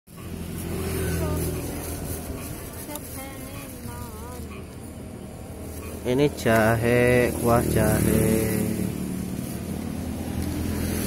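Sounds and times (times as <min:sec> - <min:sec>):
vehicle engine humming: 0:00.1 - 0:11.0.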